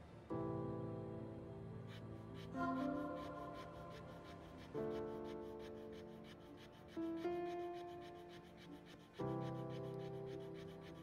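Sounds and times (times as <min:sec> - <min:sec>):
soft slow background music: 0:00.0 - 0:11.0
wooden stick scraping in groove: 0:01.9 - 0:11.0.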